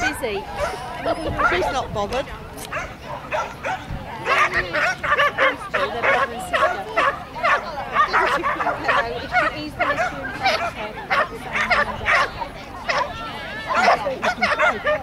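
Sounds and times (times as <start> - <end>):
dog barking: 0.0 - 1.8, 2.7 - 15.0.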